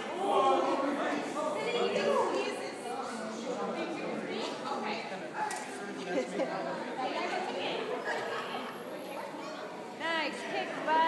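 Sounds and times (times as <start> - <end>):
indistinct chatter of adults and children: 0.0 - 11.0.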